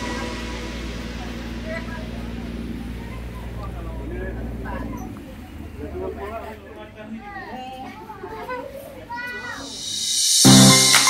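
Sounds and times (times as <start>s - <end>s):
rising whoosh: 0.0s - 4.7s, 9.4s - 11.0s
children chattering: 0.0s - 10.0s.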